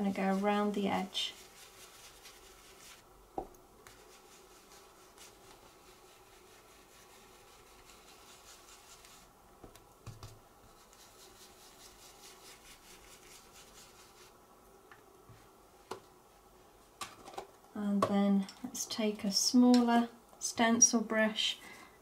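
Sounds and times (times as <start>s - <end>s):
brush swirling on card: 0.0s - 3.1s, 3.8s - 9.4s, 10.1s - 14.4s.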